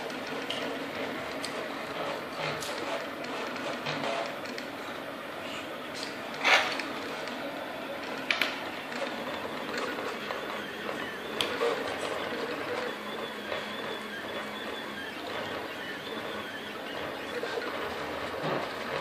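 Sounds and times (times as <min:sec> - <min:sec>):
printer fans and motors whirring: 0:00.0 - 0:19.0.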